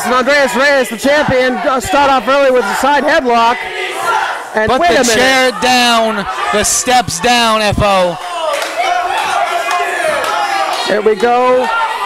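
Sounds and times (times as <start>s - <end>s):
commentary voice: 4.5s - 8.2s
person shouting: 4.7s - 8.2s.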